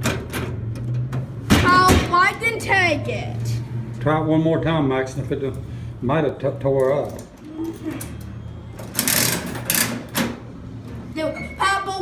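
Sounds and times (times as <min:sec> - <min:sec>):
coin mechanism ratchet rattling: 0:08.8 - 0:10.1.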